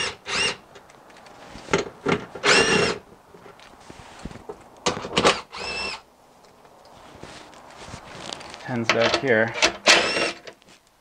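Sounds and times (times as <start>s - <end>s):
power driver whirring: 0.0s - 0.6s, 2.4s - 3.0s, 5.3s - 6.0s, 9.9s - 10.4s.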